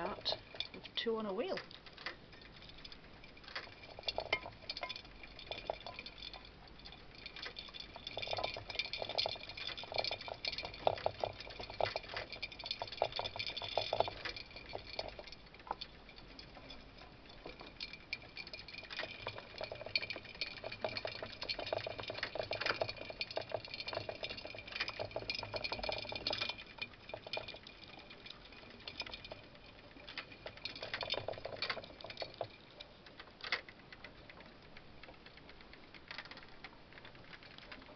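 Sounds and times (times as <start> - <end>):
exercise wheel clattering: 0.0 - 37.9.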